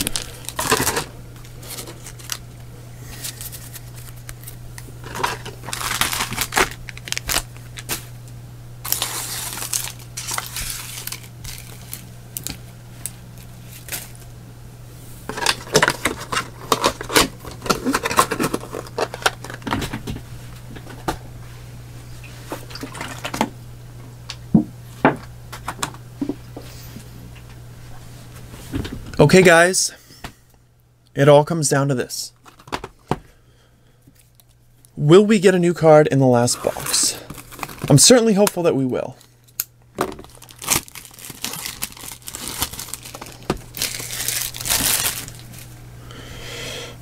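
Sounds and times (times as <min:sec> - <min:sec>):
cards and foil packs rustling: 0:00.0 - 0:14.3, 0:15.3 - 0:20.2, 0:36.3 - 0:45.8.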